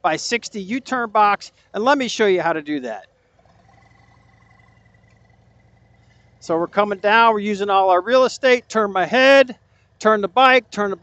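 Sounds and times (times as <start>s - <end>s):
distant motorcycle engine hum: 0.0s - 11.0s.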